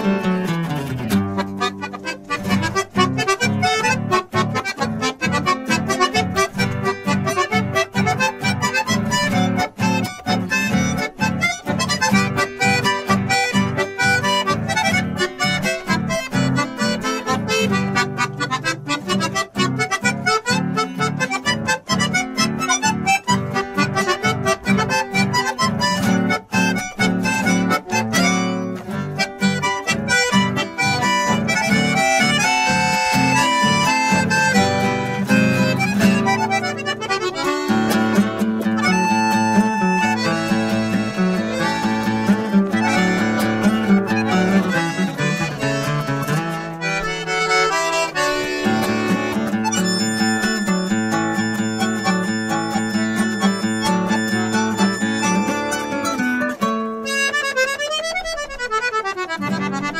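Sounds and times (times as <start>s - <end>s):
button accordion melody: 0.0s - 59.9s
classical guitar strumming: 0.0s - 59.9s.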